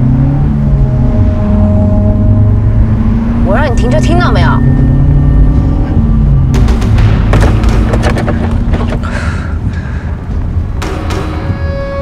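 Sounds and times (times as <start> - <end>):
heavy low rumble: 0.0 - 11.6
dramatic background score: 0.0 - 12.0
percussive hits: 6.5 - 9.0.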